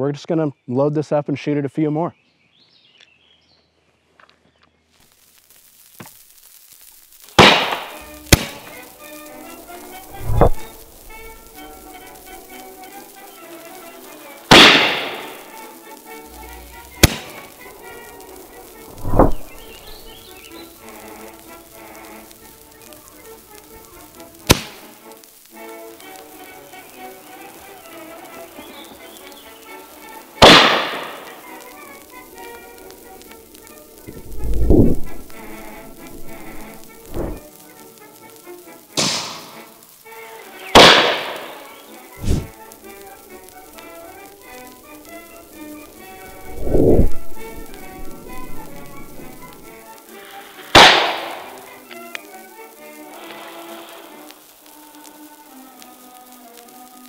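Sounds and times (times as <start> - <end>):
background music: 7.3 - 57.0
cannon shots echoing: 7.4 - 8.8, 14.5 - 15.5, 16.5 - 17.9, 30.4 - 31.3, 40.8 - 41.6, 50.8 - 51.6.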